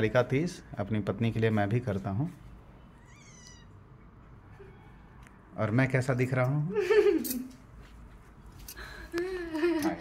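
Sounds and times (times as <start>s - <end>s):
high-pitched animal call: 3.0s - 3.8s.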